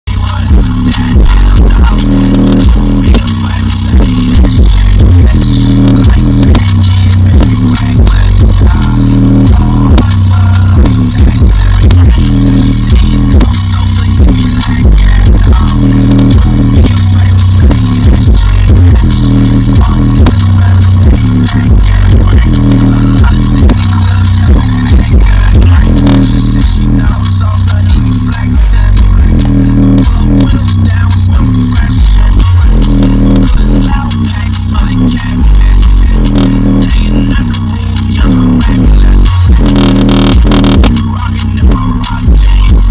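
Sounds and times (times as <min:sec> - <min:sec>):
bass-heavy music from speaker: 0:00.0 - 0:42.9.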